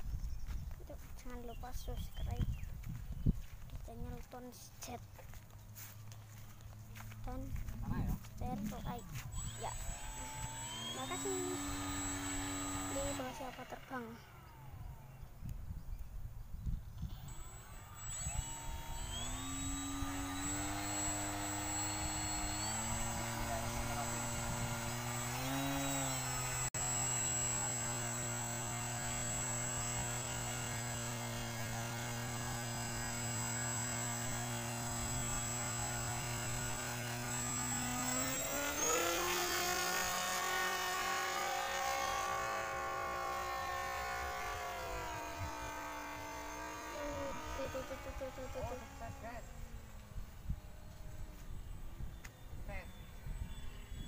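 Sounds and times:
model plane motor whining: 0:08.5 - 0:54.0.

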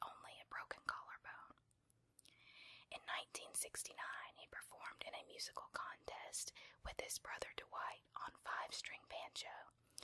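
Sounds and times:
person whispering: 0:00.0 - 0:01.6, 0:02.9 - 0:09.7.

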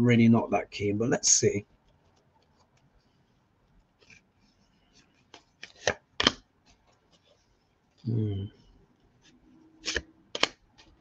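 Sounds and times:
cards being shuffled: 0:03.7 - 0:07.4, 0:09.1 - 0:11.0
card snaps: 0:05.6 - 0:06.4, 0:09.8 - 0:10.6.

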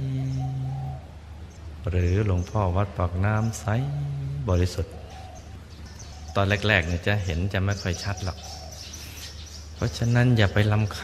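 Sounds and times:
man speaking slowly: 0:01.8 - 0:05.0.

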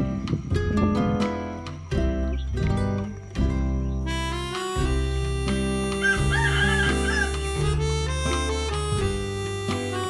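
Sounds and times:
instrumental music: 0:00.0 - 0:10.0
rooster crowing: 0:06.0 - 0:07.4.

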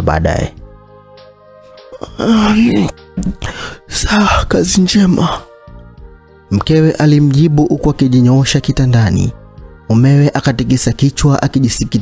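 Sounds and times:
background music: 0:00.0 - 0:12.0
woman moaning: 0:02.0 - 0:03.6.

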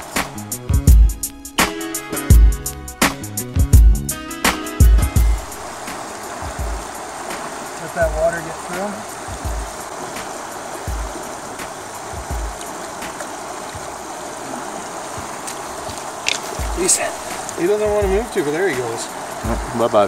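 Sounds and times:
river running over gravel: 0:00.0 - 0:02.1, 0:04.4 - 0:20.0
low thumps on microphone: 0:04.8 - 0:08.2, 0:09.2 - 0:12.6, 0:16.3 - 0:18.3, 0:19.4 - 0:19.8.

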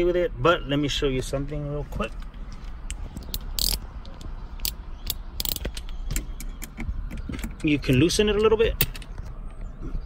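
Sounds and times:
hand tool clicking and clattering: 0:03.2 - 0:03.8, 0:04.6 - 0:09.1.

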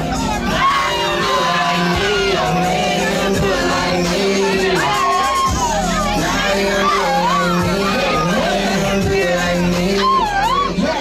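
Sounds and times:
crowd shouting and cheering: 0:00.0 - 0:11.0
loud music with held bass: 0:00.0 - 0:11.0.

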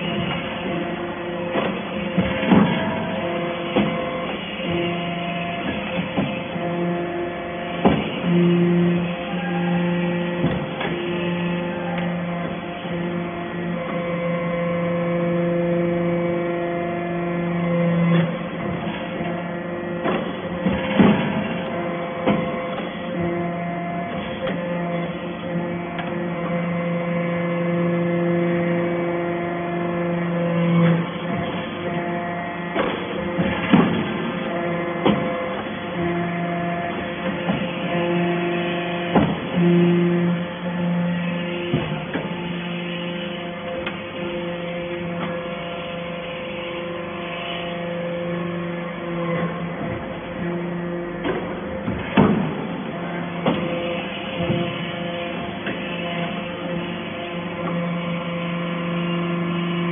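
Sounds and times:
hydraulic power unit hum: 0:00.0 - 0:59.9.

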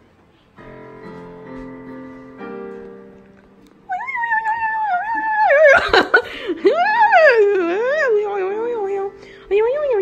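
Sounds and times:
high wordless howl: 0:03.9 - 0:05.8.

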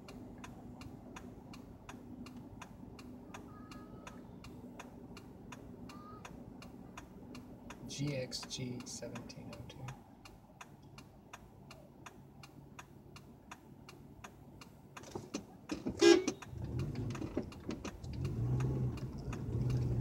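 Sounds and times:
turn signal relay ticking: 0:00.0 - 0:20.0
car horn beep: 0:15.9 - 0:16.5
car engine revving: 0:16.0 - 0:20.0.

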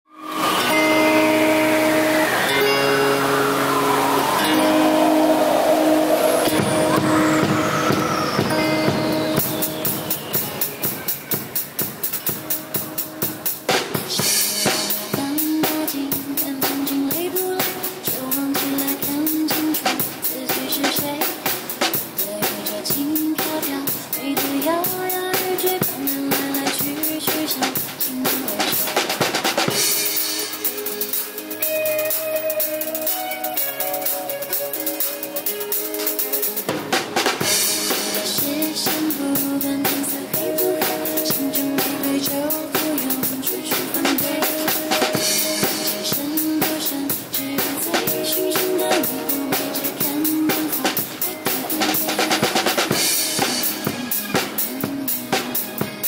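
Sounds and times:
falling synth sweep: 0:00.1 - 0:10.0
pop backing track: 0:00.3 - 0:56.0
acoustic drum kit: 0:03.6 - 0:56.0.

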